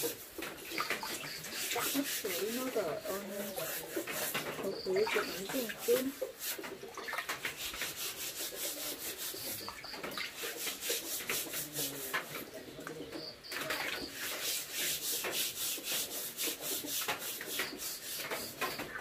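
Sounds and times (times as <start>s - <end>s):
steel wool scrubbing wooden board: 0.0s - 12.6s, 13.8s - 19.0s.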